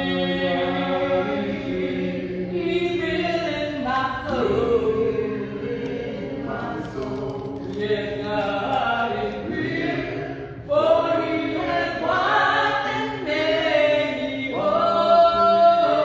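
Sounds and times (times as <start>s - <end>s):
group singing a hymn unaccompanied: 0.0s - 16.0s.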